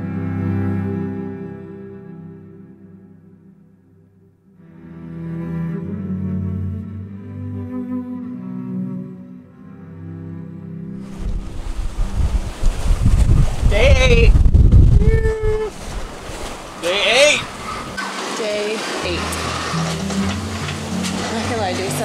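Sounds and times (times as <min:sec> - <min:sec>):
background music: 0:00.0 - 0:11.0, 0:18.8 - 0:22.0
wind buffeting on microphone: 0:11.0 - 0:18.0
wind and rough sea rushing: 0:11.0 - 0:22.0
short voice sounds: 0:13.7 - 0:14.4, 0:15.0 - 0:15.8, 0:16.8 - 0:17.5.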